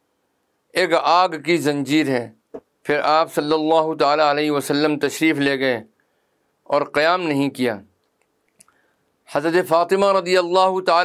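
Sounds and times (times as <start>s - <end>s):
man speaking: 0.7s - 5.9s, 6.7s - 7.9s, 9.3s - 11.0s.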